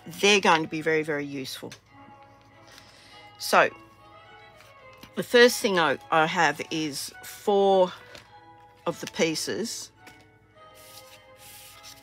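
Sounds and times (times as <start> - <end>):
quiet background music: 0.0 - 12.0
cardstock sliding across a desk: 10.8 - 12.0.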